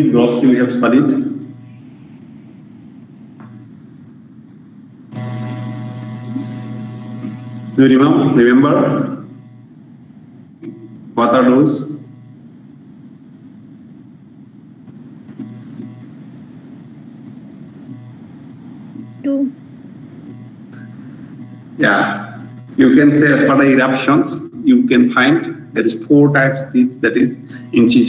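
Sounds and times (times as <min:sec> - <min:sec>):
electrical hum with tones: 0:00.0 - 0:28.0.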